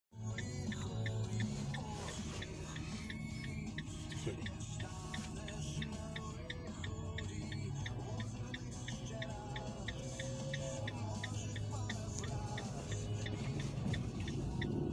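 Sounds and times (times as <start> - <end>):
music in car cabin: 0.2 - 14.9
turn signal ticking: 2.7 - 14.9.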